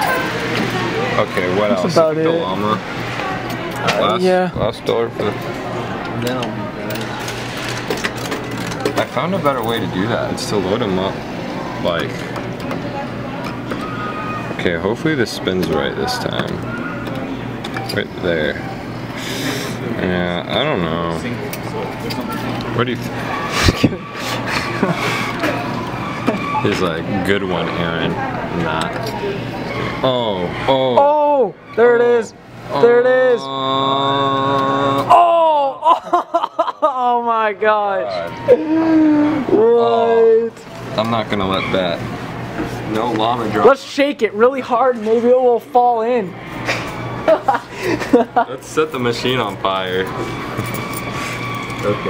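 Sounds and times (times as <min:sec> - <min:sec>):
faint indistinct voices: 0:00.0 - 0:32.8
man's drawn-out uhhh: 0:38.5 - 0:39.6.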